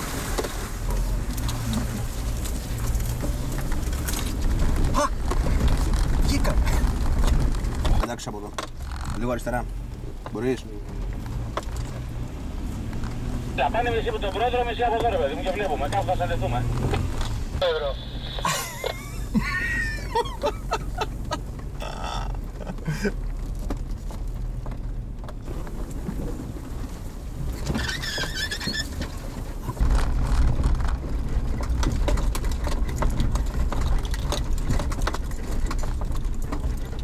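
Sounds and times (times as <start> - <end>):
body rattles and knocks: 0.0 - 13.4, 14.2 - 17.6, 18.4 - 37.0
engine and road rumble: 0.0 - 37.0
brief high squeaks: 27.6 - 29.0.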